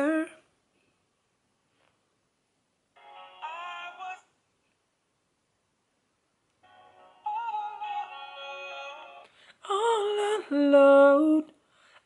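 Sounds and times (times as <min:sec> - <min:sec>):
recorded singing voice: 0:00.0 - 0:00.5, 0:03.0 - 0:04.4, 0:06.6 - 0:11.6.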